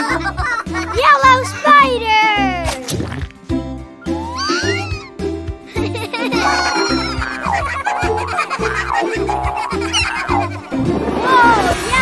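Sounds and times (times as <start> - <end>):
bouncy cartoon music: 0.0 - 12.0.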